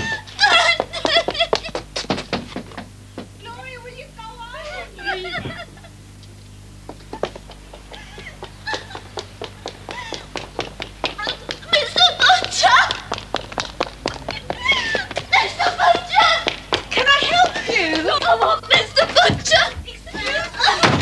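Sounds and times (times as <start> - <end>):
woman's high wordless cries: 0.0 - 1.6, 4.4 - 5.7, 9.9 - 10.3, 14.2 - 21.0.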